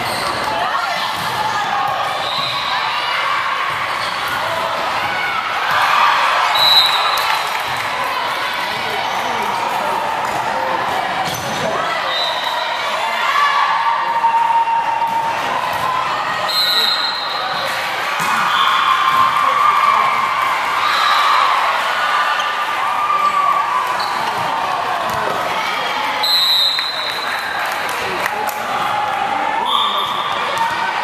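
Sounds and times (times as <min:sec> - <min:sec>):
crowd shouting and cheering: 0:00.0 - 0:31.0
referee whistle blasts: 0:06.5 - 0:07.2, 0:16.5 - 0:17.6, 0:26.2 - 0:27.3, 0:29.6 - 0:30.4
volleyballs struck and bouncing: 0:24.2 - 0:25.6.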